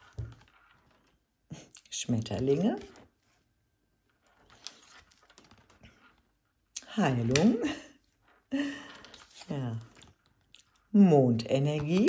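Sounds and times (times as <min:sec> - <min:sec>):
cards clicking and rustling: 0:04.3 - 0:06.1, 0:11.6 - 0:12.0.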